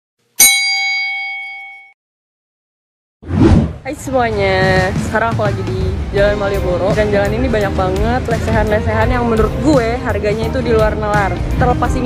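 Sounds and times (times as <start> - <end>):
bright bell-like ding: 0.4 - 2.0.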